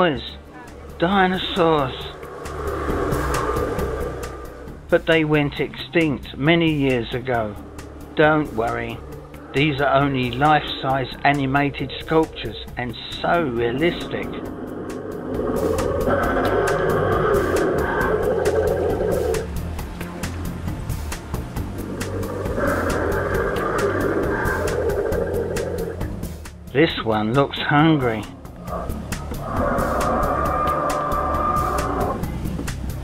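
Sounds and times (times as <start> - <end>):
dinosaur roar: 0.9 - 5.4, 6.4 - 19.6, 21.6 - 26.3, 28.5 - 32.4
music with steady beat: 14.6 - 26.8, 28.2 - 33.0.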